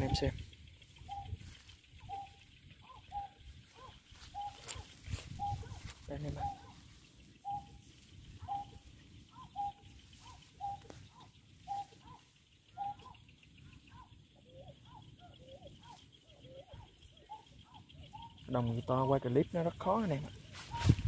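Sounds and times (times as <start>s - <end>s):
bird hooting calls: 0.0s - 21.0s.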